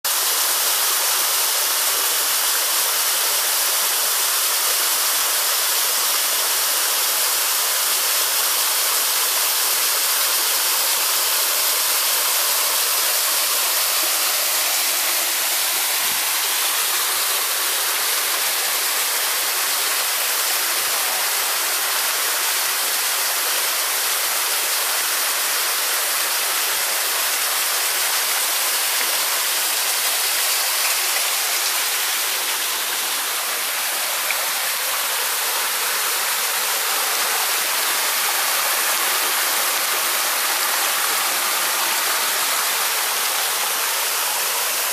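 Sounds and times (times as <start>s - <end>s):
water splashing over rocks: 26.1s - 44.9s.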